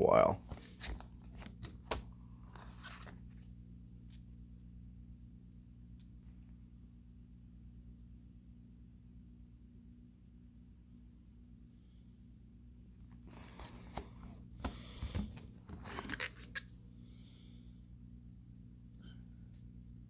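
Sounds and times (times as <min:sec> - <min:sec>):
faint low hum: 0:00.0 - 0:20.0
plastic binder page crinkling: 0:00.4 - 0:04.3, 0:13.1 - 0:16.7.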